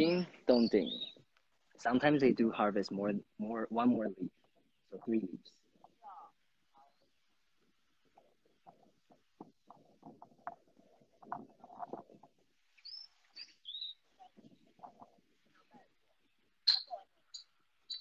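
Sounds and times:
high bird chirps: 0.0 - 1.2, 12.7 - 15.0, 16.2 - 18.0
crackling and rustling: 5.5 - 16.6.

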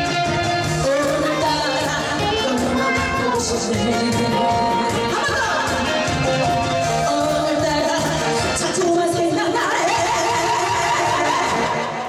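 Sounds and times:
live band with saxophone: 0.0 - 12.0.

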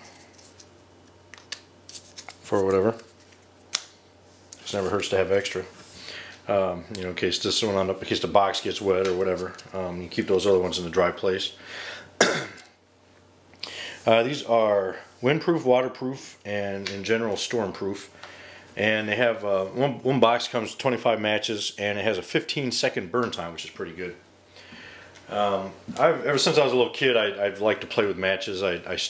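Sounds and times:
quiet room hum: 0.0 - 29.0
man coughing: 12.2 - 12.7.

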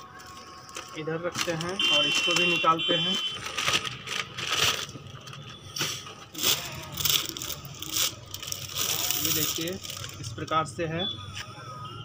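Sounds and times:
packaging rustling and crinkling: 0.1 - 10.5.

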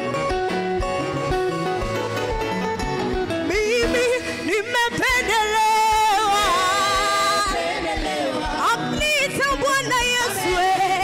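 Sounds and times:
backing music: 0.0 - 11.0
person singing gospel: 3.4 - 11.0.

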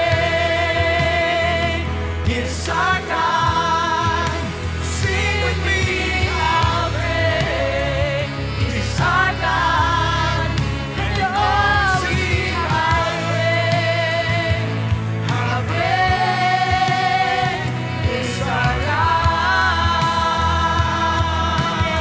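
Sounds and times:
gospel band playing: 0.0 - 22.0
saxophone: 0.0 - 22.0.

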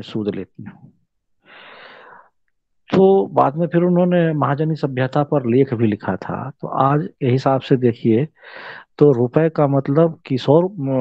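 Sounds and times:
man breathing in: 1.4 - 2.4, 8.4 - 9.0.

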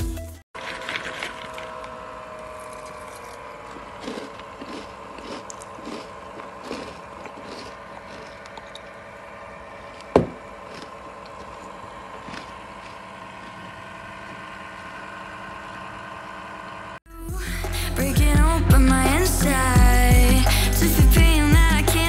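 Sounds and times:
music: 0.0 - 0.4, 17.1 - 22.0
crunching chips: 0.6 - 9.0, 10.0 - 13.0
steady hum: 1.0 - 22.0.

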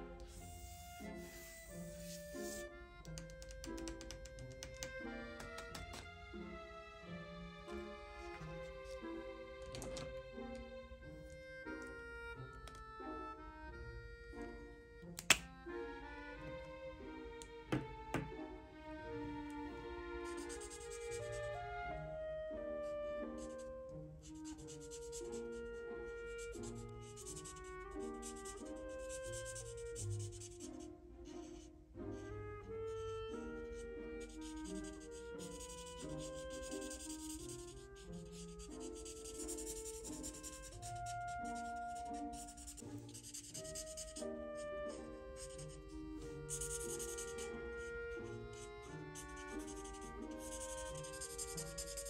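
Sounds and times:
background music: 0.0 - 52.0
marker scratching on paper: 0.2 - 6.0, 20.2 - 21.5, 22.8 - 31.7, 32.9 - 52.0
marker cap clicking off: 1.3 - 6.1, 9.6 - 10.6, 15.1 - 15.5, 17.4 - 18.4.

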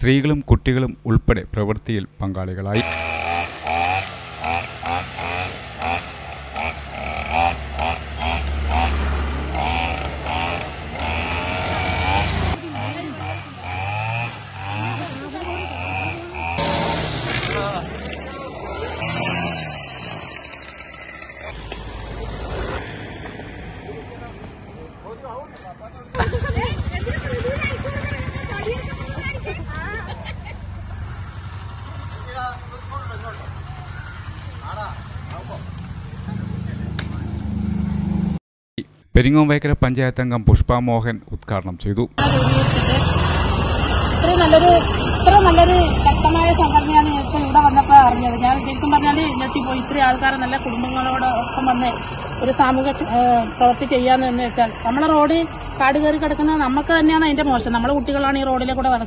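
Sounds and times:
people talking: 0.0 - 2.8, 12.6 - 13.8, 14.8 - 16.6, 17.3 - 19.3, 23.9 - 30.5, 32.1 - 37.3, 39.2 - 43.4, 44.1 - 59.0
brush cutter engine revving: 2.8 - 23.2, 26.2 - 30.1, 42.2 - 57.4
motorcycle engine rumble: 2.8 - 38.4, 42.2 - 59.0.

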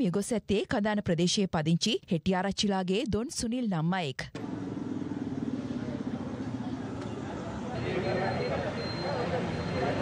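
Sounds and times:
street background noise: 0.0 - 10.0.

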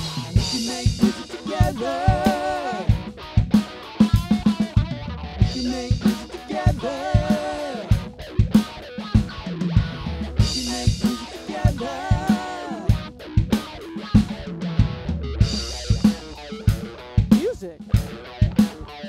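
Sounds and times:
drum kit beat: 0.0 - 19.0
electric guitar lead lines: 0.0 - 19.0.

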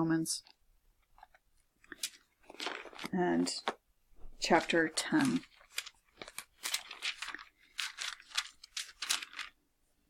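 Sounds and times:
paper pages rustling: 0.4 - 9.6.

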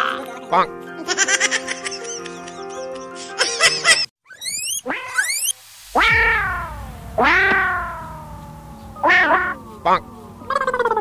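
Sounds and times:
meow-like calls: 4.3 - 11.0
quick rising sweep: 5.3 - 10.5.

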